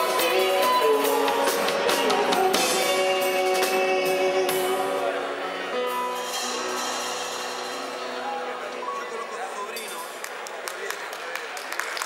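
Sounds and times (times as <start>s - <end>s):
live band notes ringing: 0.0s - 10.2s
hand clapping applause: 10.0s - 12.0s.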